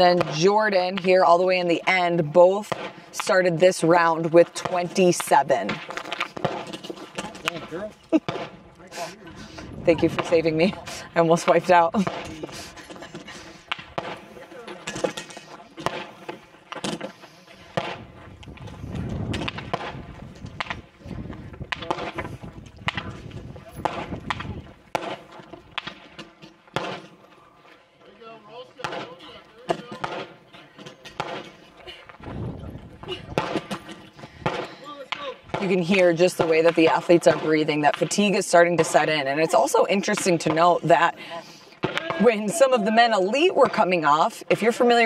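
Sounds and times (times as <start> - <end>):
people breathing hard: 8.8 - 9.8, 10.7 - 11.2, 12.0 - 14.8, 15.4 - 18.0, 30.5 - 35.1, 41.1 - 41.9.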